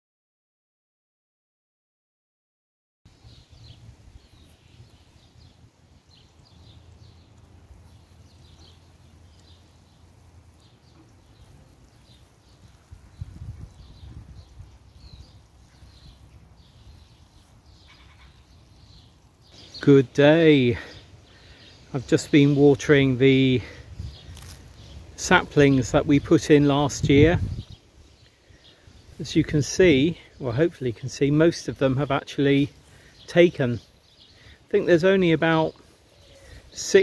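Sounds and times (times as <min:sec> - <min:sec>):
small birds chirping: 0:03.1 - 0:37.0.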